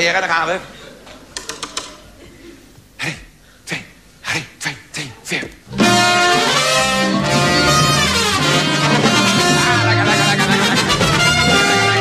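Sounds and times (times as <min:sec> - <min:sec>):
orchestra with loud brass: 0:05.8 - 0:12.0.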